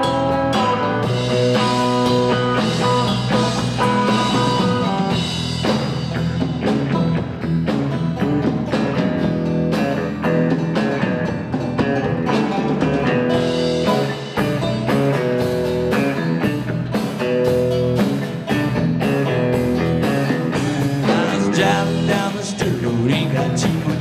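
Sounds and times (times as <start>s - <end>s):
banjo: 0.0s - 24.0s
drum kit: 0.0s - 24.0s
electric bass: 0.0s - 24.0s
electric guitar: 0.0s - 24.0s.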